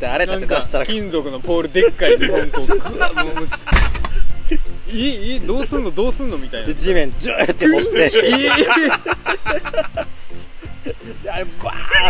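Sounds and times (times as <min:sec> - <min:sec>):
men talking and laughing: 0:00.0 - 0:12.0.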